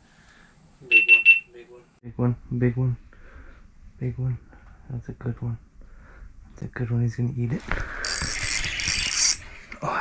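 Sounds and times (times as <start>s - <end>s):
fishing reel whirring: 8.0s - 9.4s.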